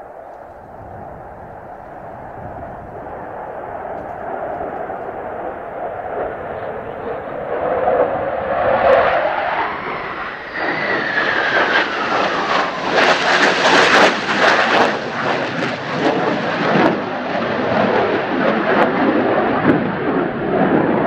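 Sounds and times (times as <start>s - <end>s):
crackling jet roar: 0.0s - 21.0s
jet fighter passing overhead: 0.0s - 21.0s
wind buffeting microphone: 0.0s - 21.0s.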